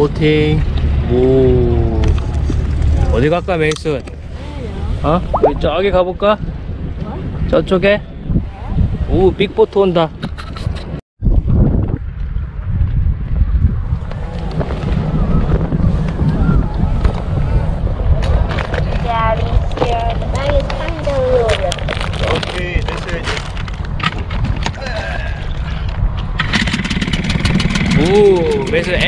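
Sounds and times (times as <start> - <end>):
steady low rumble: 0.7 - 7.0
outboard motor starting: 26.4 - 28.9.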